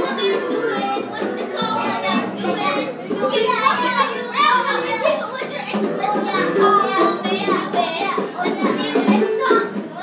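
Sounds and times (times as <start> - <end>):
children's voices: 0.0 - 10.0
girl's voice: 0.0 - 10.0.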